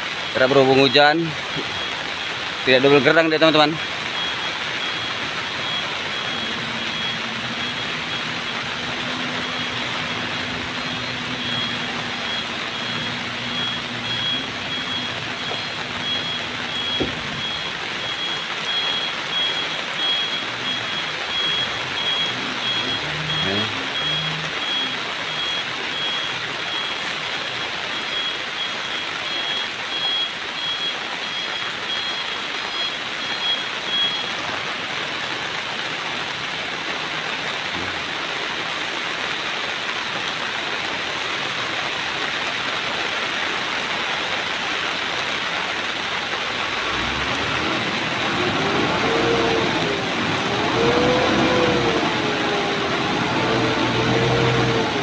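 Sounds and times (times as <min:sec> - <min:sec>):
truck engine running: 0:00.0 - 0:29.0, 0:46.1 - 0:55.0
truck reversing alarm beeping: 0:00.0 - 0:34.7, 0:46.3 - 0:55.0
rain hissing: 0:00.0 - 0:55.0.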